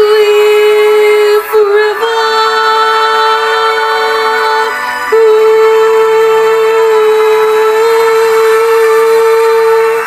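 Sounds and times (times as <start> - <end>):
instrumental backing music: 0.0 - 10.0
woman singing a long note: 0.0 - 10.0.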